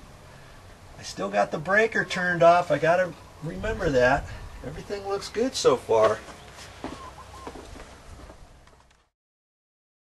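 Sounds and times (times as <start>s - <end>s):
bird calls: 1.7s - 8.4s.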